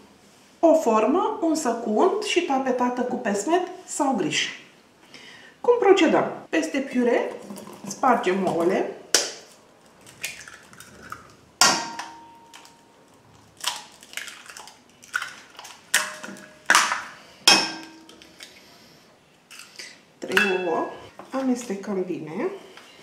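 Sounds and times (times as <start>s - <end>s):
eggs cracking on bowl rim: 9.1s - 12.8s, 13.6s - 18.5s
eggshells pulled apart: 13.5s - 16.0s.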